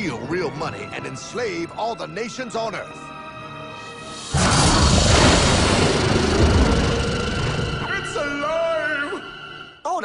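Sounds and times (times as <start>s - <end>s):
heavy machine rumbling with hiss: 4.0s - 7.8s.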